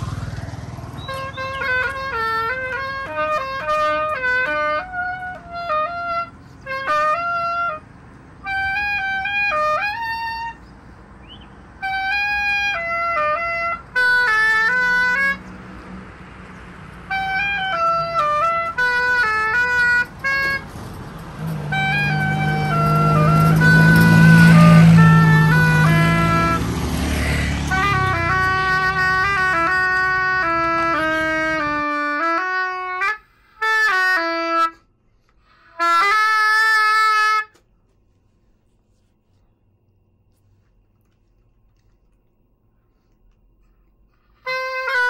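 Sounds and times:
passing road vehicle hum: 0.0s - 45.0s
solo woodwind melody: 0.9s - 15.6s, 17.0s - 20.8s, 21.4s - 37.7s, 44.2s - 45.0s.

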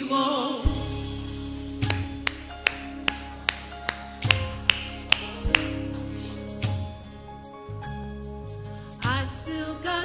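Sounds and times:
sustained band chords: 0.7s - 8.4s
sharp snap on the beat: 1.8s - 6.8s.

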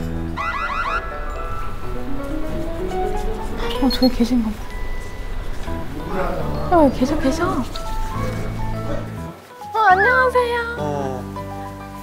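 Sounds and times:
background music: 0.0s - 12.0s
rising electronic chirps: 0.3s - 7.1s.

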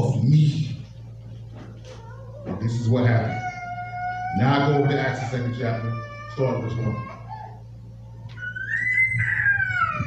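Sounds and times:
high-pitched cry: 8.3s - 10.0s.

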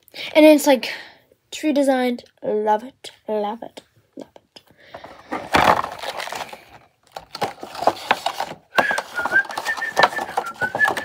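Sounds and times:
plastic packaging crinkling: 5.1s - 11.0s
person whistling a steady note: 8.7s - 11.0s.

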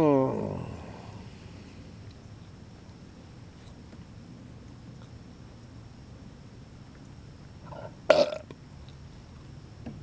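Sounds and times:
man burping: 7.7s - 8.5s.

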